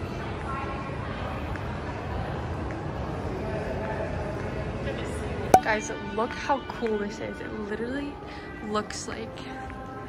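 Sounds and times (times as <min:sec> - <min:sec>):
faint indistinct voices: 0:00.0 - 0:10.0.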